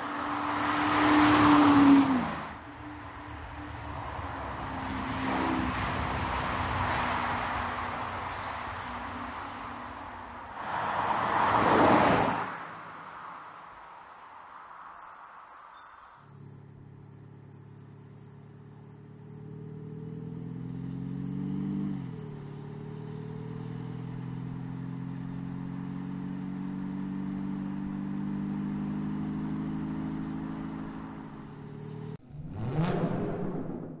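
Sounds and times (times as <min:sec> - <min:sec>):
car engine accelerating: 0:16.3 - 0:34.0
loud sound effect: 0:32.2 - 0:34.0.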